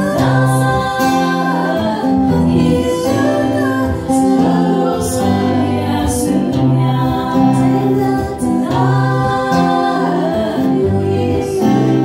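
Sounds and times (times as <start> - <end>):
women singing in harmony: 0.0 - 12.0.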